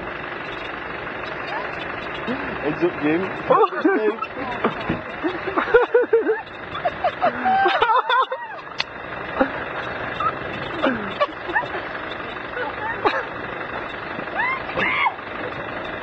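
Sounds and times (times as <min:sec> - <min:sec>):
off-road vehicle engine running: 0:00.0 - 0:16.0.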